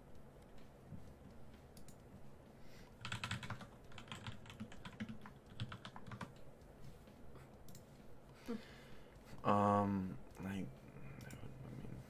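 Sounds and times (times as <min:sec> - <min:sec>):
computer keyboard typing: 0:00.1 - 0:02.2, 0:02.9 - 0:06.7.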